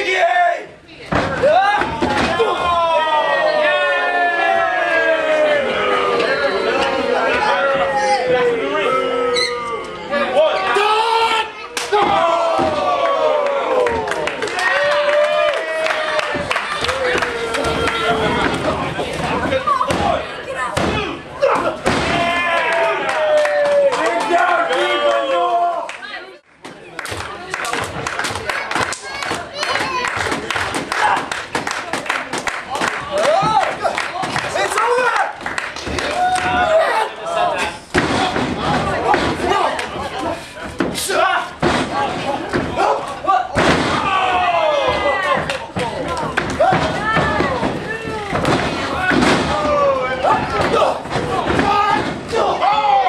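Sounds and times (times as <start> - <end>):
crowd shouting: 1.4 - 26.2, 35.9 - 53.0.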